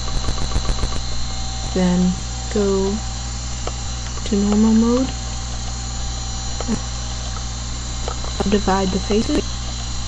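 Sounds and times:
low mains hum: 0.0 - 10.0
thin whining tones: 0.0 - 10.0.

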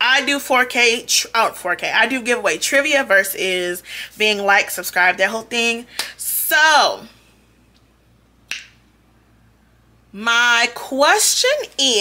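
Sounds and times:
finger snap: 7.7 - 8.8.

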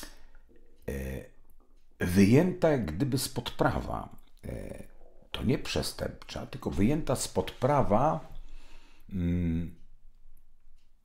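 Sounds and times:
man's low wordless vocal sound: 9.1 - 9.7.

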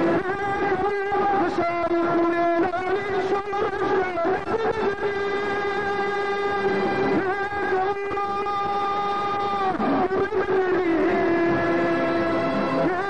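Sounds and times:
man singing: 0.0 - 13.0.

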